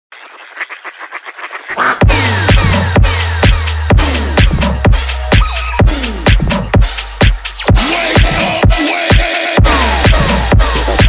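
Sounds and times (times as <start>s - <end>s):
rapid quack-like synth sounds: 0.4s - 3.8s, 5.3s - 6.0s.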